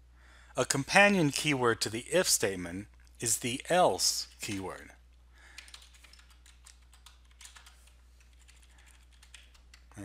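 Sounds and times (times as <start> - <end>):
faint keyboard typing: 4.2 - 10.0.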